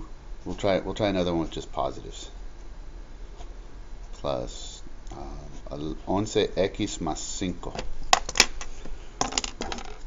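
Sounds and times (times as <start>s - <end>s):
plastic pen clattering on desk: 9.2s - 10.0s.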